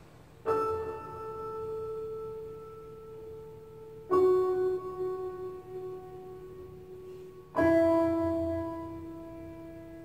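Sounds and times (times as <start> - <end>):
piano chord: 0.0 - 10.0.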